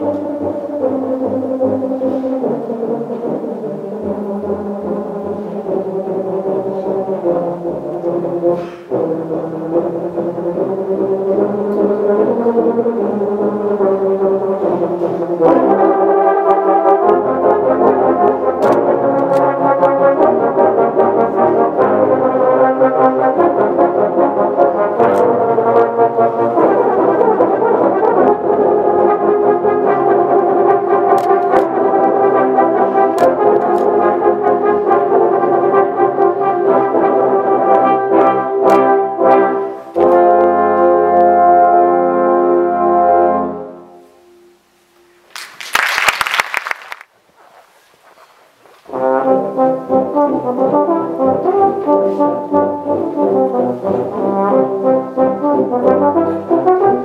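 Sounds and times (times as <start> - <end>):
tuba and euphonium ensemble: 0.0 - 44.9, 48.8 - 57.0.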